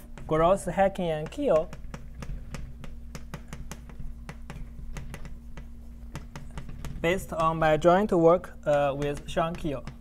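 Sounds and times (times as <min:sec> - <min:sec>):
chalk tapping on blackboard: 0:00.0 - 0:10.0.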